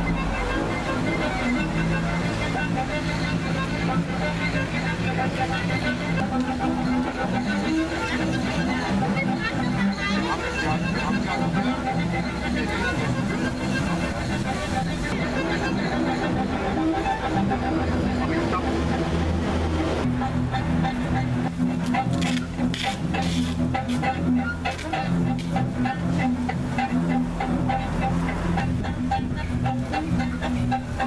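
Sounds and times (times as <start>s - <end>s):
bowed double bass: 0.0s - 31.0s
violin playing long notes: 0.0s - 31.0s.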